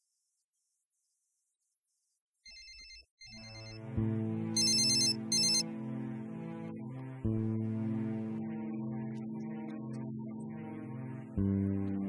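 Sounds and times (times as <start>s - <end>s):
mobile phone ringtone: 2.5s - 3.8s, 4.6s - 5.7s.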